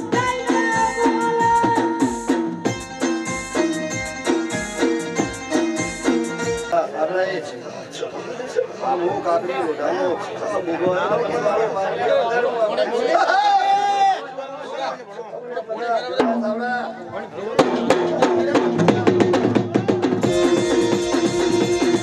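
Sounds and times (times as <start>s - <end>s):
folk music with rapid drums: 0.0s - 6.8s, 16.2s - 22.0s
overlapping voices and chatter: 6.2s - 22.0s.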